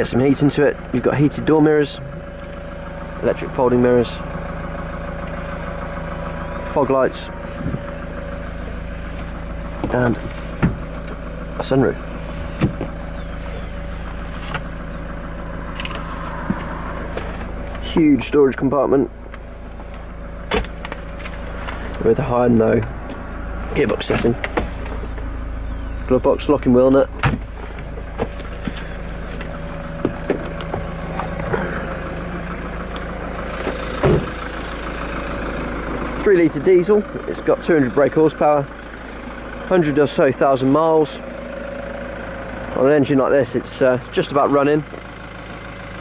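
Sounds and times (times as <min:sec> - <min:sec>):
diesel engine idling: 0:00.0 - 0:46.0
car door thump: 0:10.6 - 0:10.9, 0:12.6 - 0:13.0, 0:27.2 - 0:28.9, 0:33.6 - 0:34.4
glove box clicking shut: 0:27.2 - 0:31.4.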